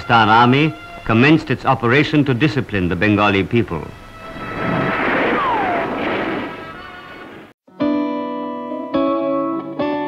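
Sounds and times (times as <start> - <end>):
background music: 0.0 - 2.7
falling whistle: 4.2 - 7.4
gunfire and artillery: 4.4 - 7.5.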